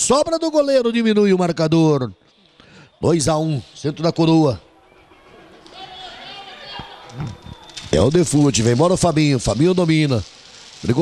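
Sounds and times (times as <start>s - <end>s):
distant voices shouting and chattering: 2.2s - 9.4s.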